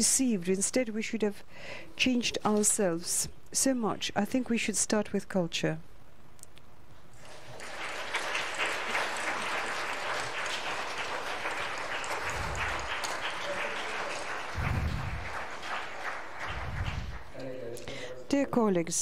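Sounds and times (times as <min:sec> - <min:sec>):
audience clapping: 0:07.2 - 0:17.6
low thuds: 0:14.6 - 0:15.3, 0:16.5 - 0:17.2.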